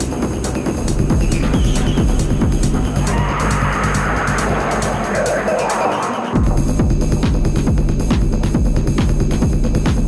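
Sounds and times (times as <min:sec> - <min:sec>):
harsh noisy synth: 0:00.0 - 0:07.2
hard techno beat: 0:00.0 - 0:10.0.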